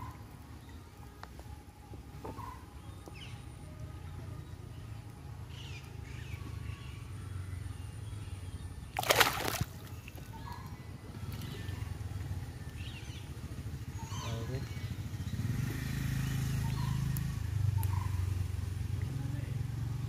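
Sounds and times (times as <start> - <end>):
low steady hum: 0.0 - 14.0
fish splashing in water: 8.9 - 10.4
water dripping and sloshing: 9.0 - 10.5.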